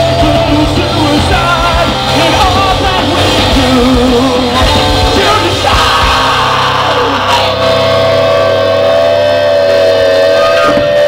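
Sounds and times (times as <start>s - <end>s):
electric guitar feedback tone: 0.0s - 11.0s
low bass hum: 0.0s - 11.0s.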